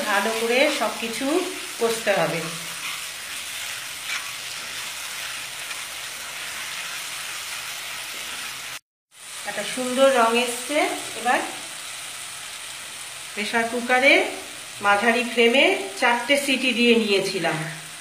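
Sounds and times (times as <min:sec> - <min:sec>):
spatula stirring in pan: 0:00.0 - 0:08.8
masala sizzling in oil: 0:00.0 - 0:18.0.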